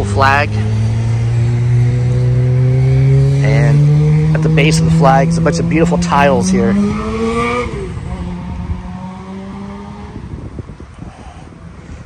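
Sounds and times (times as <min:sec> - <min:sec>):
vehicle engine revving up: 0:00.0 - 0:10.8.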